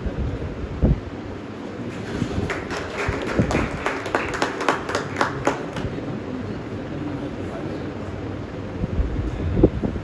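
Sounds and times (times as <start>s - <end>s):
steady background hum: 0.0s - 10.0s
hand clapping: 2.4s - 6.0s.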